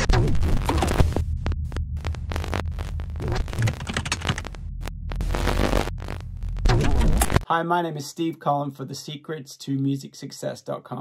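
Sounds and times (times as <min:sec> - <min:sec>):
choppy static bursts: 0:00.0 - 0:07.4
deep bass drone: 0:00.0 - 0:07.4.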